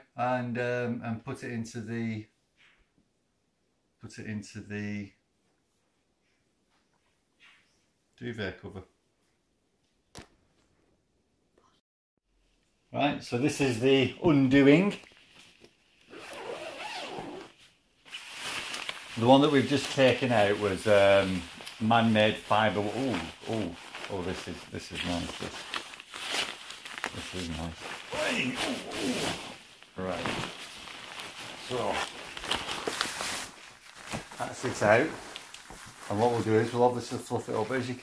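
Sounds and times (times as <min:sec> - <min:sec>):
zip rasping open: 0:16.1 - 0:17.6, 0:28.1 - 0:29.6
fabric rustling and swishing: 0:16.3 - 0:38.0.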